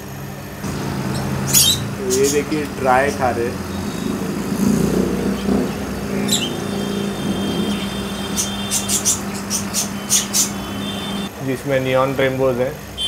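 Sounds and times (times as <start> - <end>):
falling chirp: 0.6 - 11.3
aquarium pumps humming: 0.6 - 11.5
high-pitched chirps or squeaks: 0.7 - 11.3.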